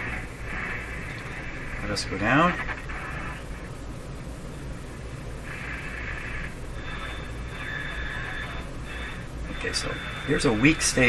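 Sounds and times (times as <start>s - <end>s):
faint radio signal: 0.0s - 11.0s
low hum: 0.0s - 11.0s
radio static and hiss: 0.0s - 11.0s.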